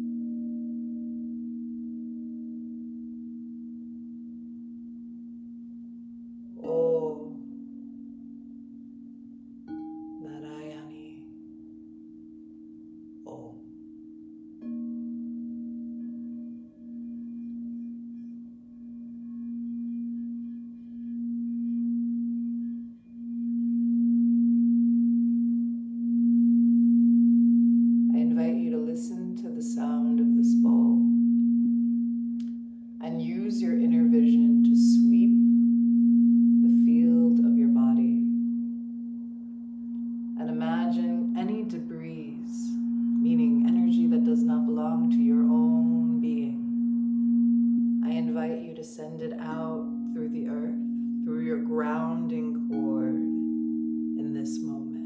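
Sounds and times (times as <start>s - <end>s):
singing bowl low tone: 0.0s - 55.0s
woman singing: 6.6s - 7.7s, 10.2s - 11.5s, 13.3s - 13.8s, 28.1s - 31.3s, 33.0s - 35.6s, 36.7s - 38.5s, 40.4s - 46.8s, 48.0s - 53.4s, 54.2s - 55.0s.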